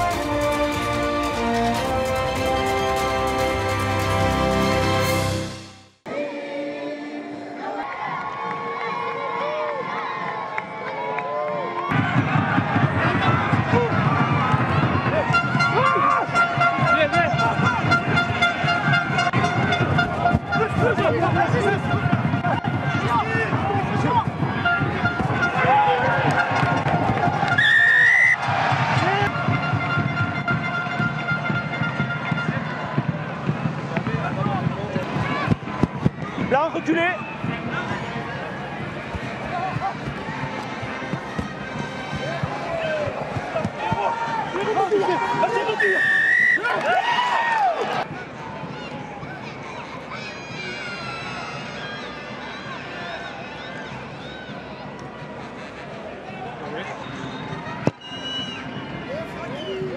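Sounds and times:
music in stands: 0.0 - 5.8
crowd shouting and cheering: 0.0 - 59.9.

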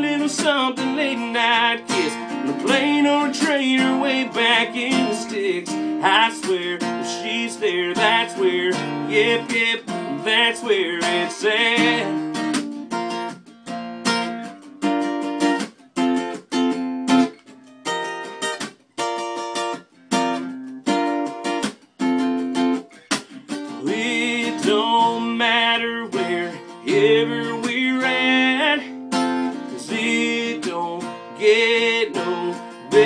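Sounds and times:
person singing: 0.0 - 12.3, 23.7 - 29.0, 29.6 - 33.0
acoustic guitar strumming chords: 0.0 - 33.0.

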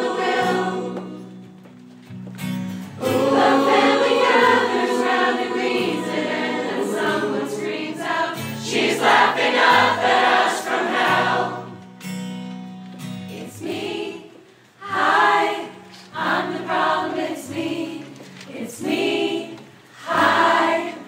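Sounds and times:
crowd choir singing pop song: 0.0 - 1.5, 3.0 - 11.8, 13.4 - 21.0.

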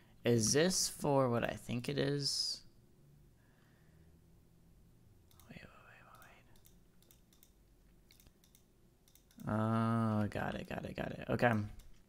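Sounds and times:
faint computer mouse clicks: 5.3 - 9.5.

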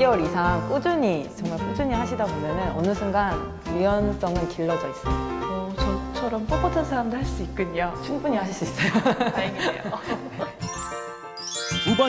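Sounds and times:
light background music: 0.0 - 12.0
twinkling chime: 10.6 - 12.0
rising run of bell tones: 10.7 - 12.0.

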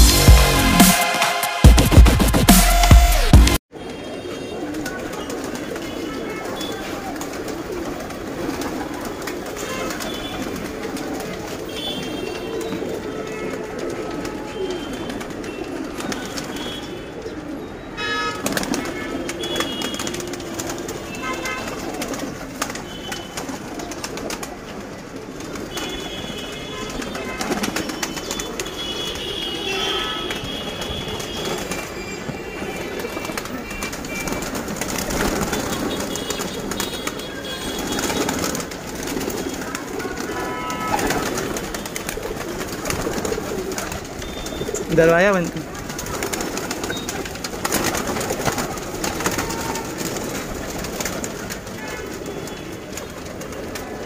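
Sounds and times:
pigeons cooing: 4.1 - 54.0.

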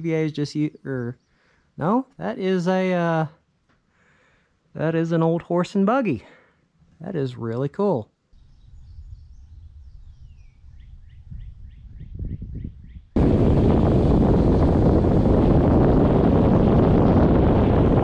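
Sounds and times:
bird chirping: 0.0 - 1.9, 8.3 - 13.2
wind buffeting microphone: 8.4 - 18.0.

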